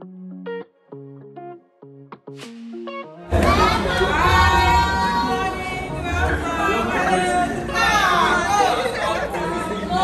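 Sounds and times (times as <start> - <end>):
excited overlapping chatter: 3.3 - 10.0.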